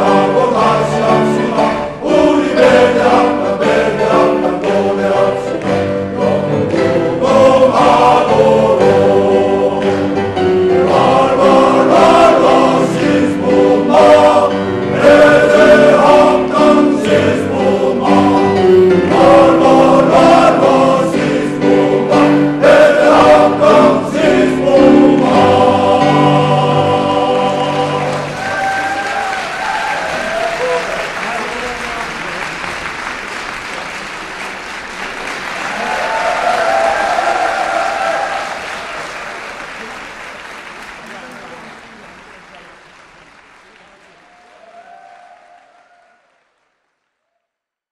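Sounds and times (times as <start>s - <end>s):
men's choir singing: 0.0s - 29.0s
piano accompaniment: 0.0s - 33.4s
audience applause: 27.5s - 47.4s.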